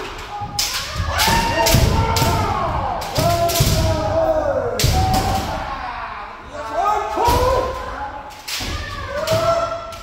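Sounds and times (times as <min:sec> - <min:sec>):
people shouting: 0:00.0 - 0:10.0.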